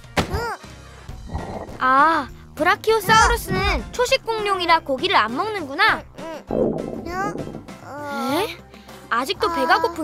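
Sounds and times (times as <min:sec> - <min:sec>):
soft background music: 0:00.0 - 0:10.0
cartoon thunk: 0:06.5 - 0:07.8.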